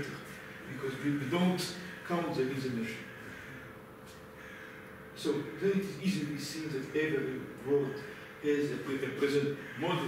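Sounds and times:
thin steady hum: 0.0 - 10.0.

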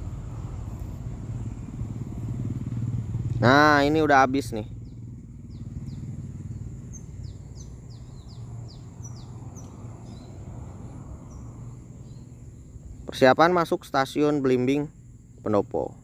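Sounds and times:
steady low hum: 0.0 - 16.0
bird chirping: 4.2 - 15.9.

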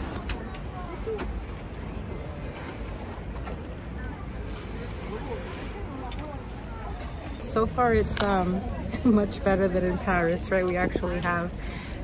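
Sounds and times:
bus low rumble: 0.0 - 12.0
faint passenger chatter: 0.0 - 12.0.

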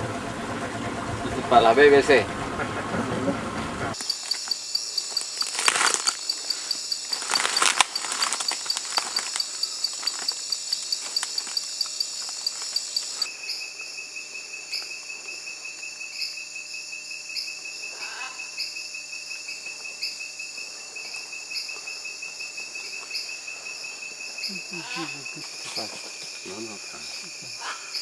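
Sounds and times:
insects chirping rapidly: 3.9 - 28.0
higher insect chirp: 4.0 - 28.0
insect trill: 4.0 - 28.0.

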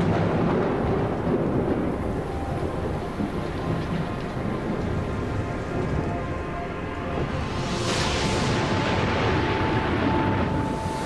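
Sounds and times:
heavy rain: 0.0 - 11.0
rumble of thunder: 0.0 - 11.0.

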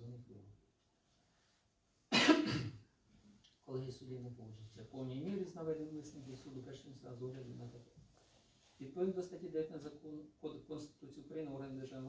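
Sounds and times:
person coughing: 2.1 - 2.8.

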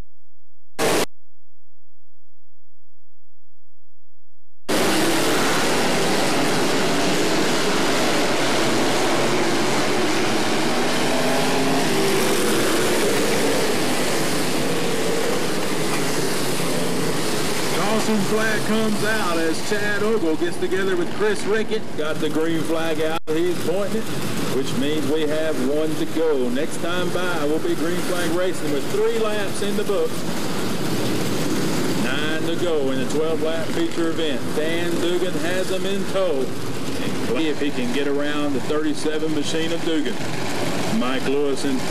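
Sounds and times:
race car engines running: 4.7 - 41.9.

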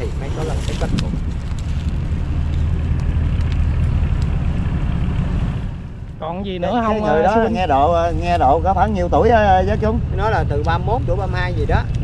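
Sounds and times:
motor vehicle passing rumble: 0.0 - 12.0.

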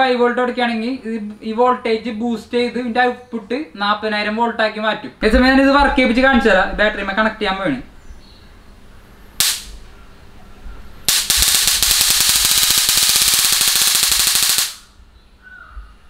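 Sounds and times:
electric sparks crackling: 9.4 - 9.9, 11.0 - 15.0.

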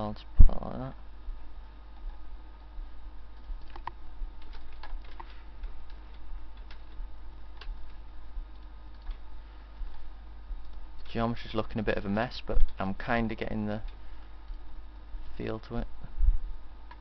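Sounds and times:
low electrical hum: 0.0 - 17.0
mouse and keyboard clicks: 3.6 - 6.0.

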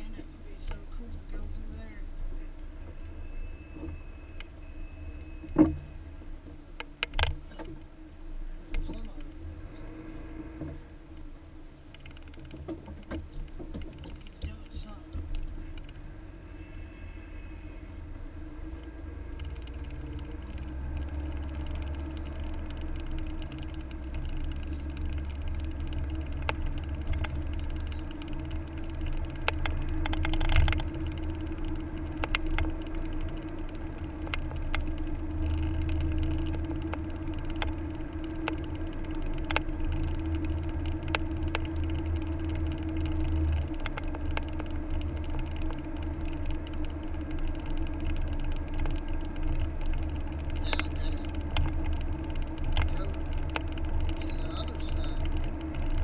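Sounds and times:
car road and engine rumble: 0.0 - 56.0
constant hum: 0.0 - 56.0.

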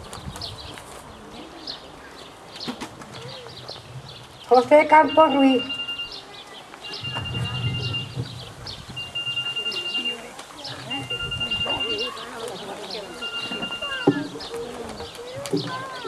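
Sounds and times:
birds chirping: 0.0 - 16.0
low murmur: 0.0 - 16.0
steady high beep: 4.9 - 6.2, 6.8 - 8.2, 9.0 - 12.1, 13.1 - 14.2.

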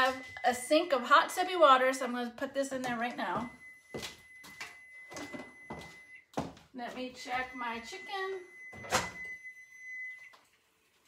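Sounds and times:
thin steady high tone: 7.2 - 10.3.

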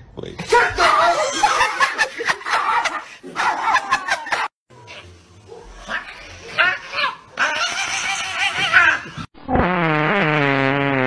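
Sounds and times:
pet animal crying: 5.8 - 9.2.

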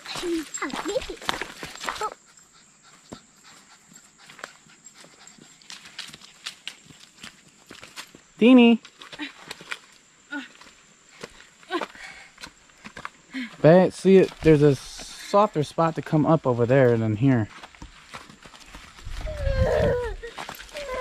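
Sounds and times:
footsteps crunching through leaves: 16.9 - 21.0.

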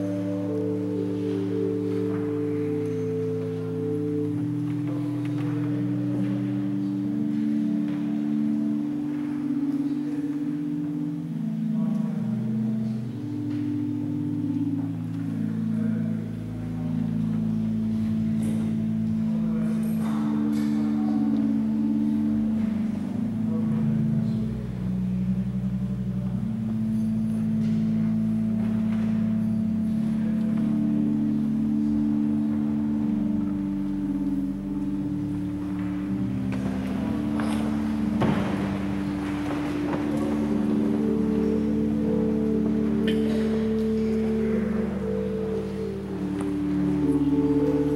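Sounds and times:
church organ chords: 0.0 - 47.9.

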